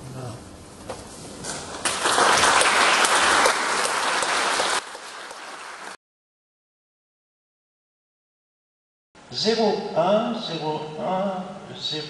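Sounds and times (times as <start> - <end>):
audience applauding: 1.8 - 6.0.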